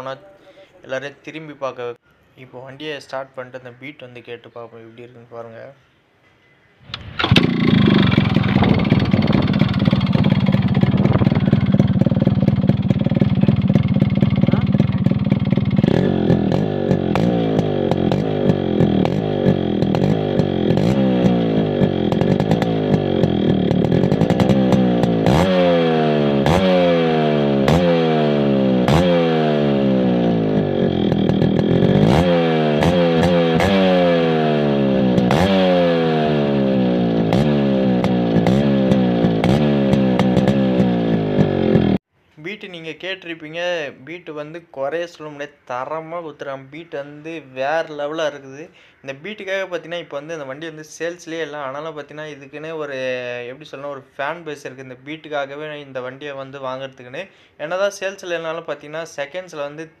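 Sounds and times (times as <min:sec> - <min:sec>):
two-stroke motorcycle engine revving: 0:06.9 - 0:42.0.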